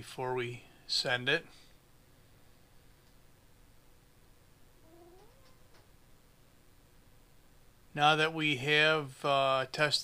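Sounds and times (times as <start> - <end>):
pet whining: 4.8 - 6.0.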